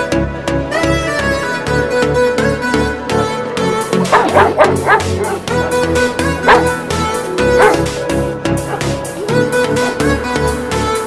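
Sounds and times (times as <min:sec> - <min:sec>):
background music with steady beat: 0:00.0 - 0:11.0
dog barking and yipping: 0:04.1 - 0:08.0, 0:08.6 - 0:10.1.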